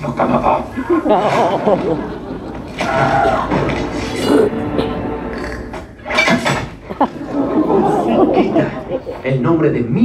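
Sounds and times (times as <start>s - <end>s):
indistinct speech: 7.2s - 10.0s.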